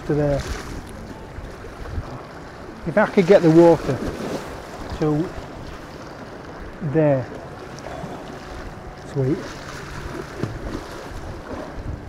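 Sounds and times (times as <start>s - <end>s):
strong wind buffeting microphone: 0.0s - 9.0s, 9.8s - 12.0s
water sloshing against concrete steps: 2.3s - 11.8s.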